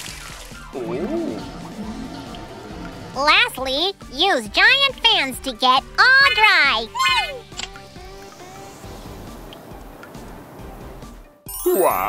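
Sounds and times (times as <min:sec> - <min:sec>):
cartoon background music: 0:00.0 - 0:12.0
voice trailing off: 0:11.6 - 0:12.0.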